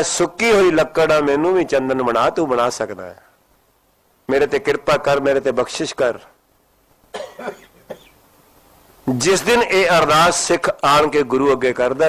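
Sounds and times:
man coughing: 7.1s - 8.2s.

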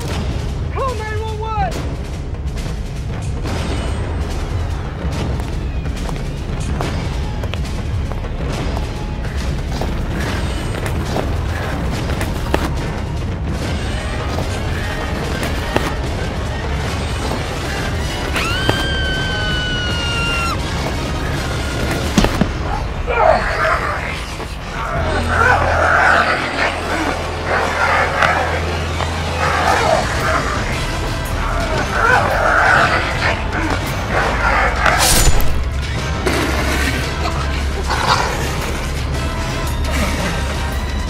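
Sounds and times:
low rumbling horror score: 1.7s - 41.0s.

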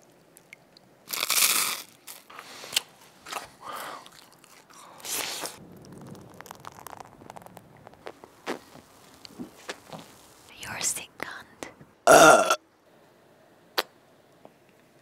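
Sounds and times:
crunching wheat biscuits: 1.1s - 10.5s
chewing: 3.3s - 10.1s.

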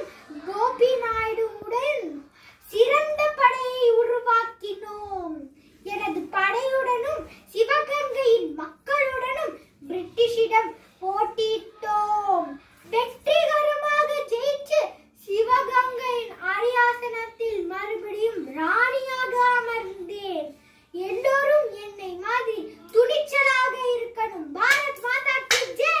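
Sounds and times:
girl declaiming a speech: 0.0s - 26.0s.

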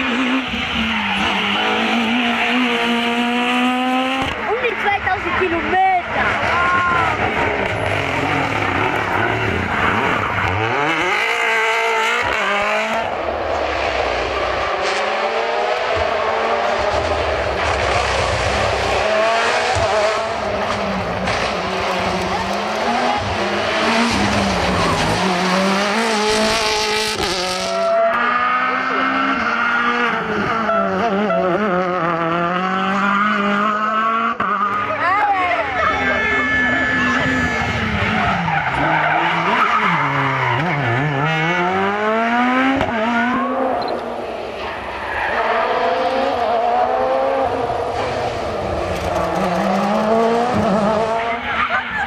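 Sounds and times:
tyre squeal: 0.0s - 2.8s
rally car engines revving: 0.0s - 52.0s.

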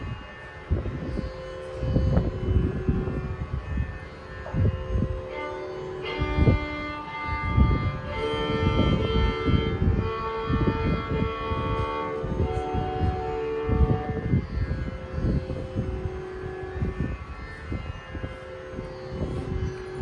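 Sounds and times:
violin holding long notes: 0.0s - 20.0s.

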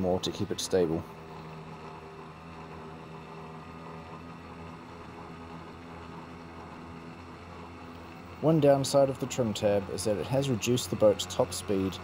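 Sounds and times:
outboard motor humming: 0.0s - 12.0s.

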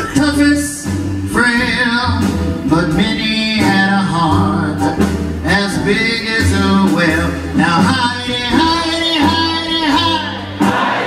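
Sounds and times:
man singing: 0.0s - 10.6s
jazz big band horns: 0.0s - 11.0s
steady bass notes: 0.0s - 11.0s.

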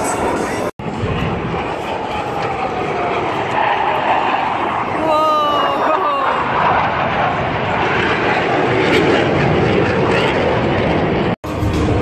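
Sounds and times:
jet engines roaring: 0.0s - 12.0s.

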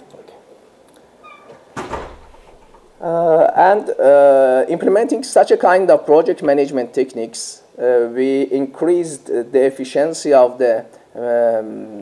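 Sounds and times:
faint high squeak: 1.2s - 1.6s.

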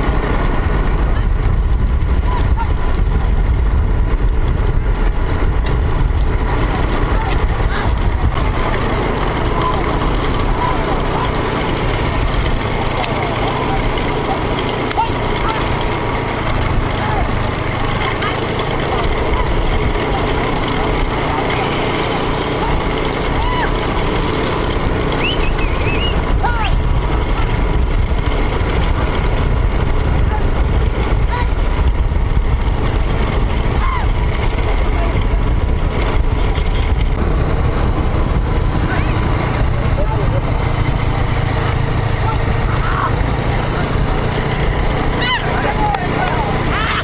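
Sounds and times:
wind noise: 0.0s - 12.9s, 24.8s - 45.8s
vehicle engine rumble: 0.0s - 47.0s
people shouting: 8.6s - 24.3s, 25.1s - 26.9s, 31.2s - 31.7s, 33.6s - 34.4s, 41.5s - 47.0s
high whistle-like calls: 25.2s - 26.7s.

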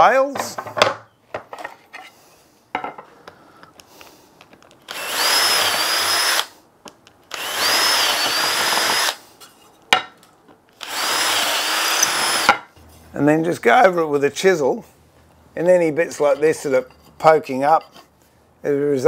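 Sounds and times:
cordless drill boring wood: 4.9s - 6.5s, 7.3s - 9.2s, 10.8s - 12.6s.

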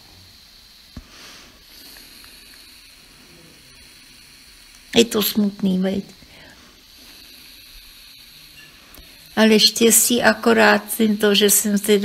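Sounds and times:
faint steady hiss: 0.0s - 12.0s
thin high-pitched tone: 8.1s - 12.0s.

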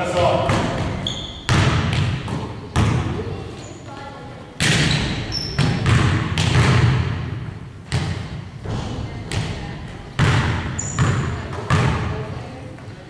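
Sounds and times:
basketball bouncing on wooden floor: 0.5s - 3.1s, 4.6s - 12.2s.

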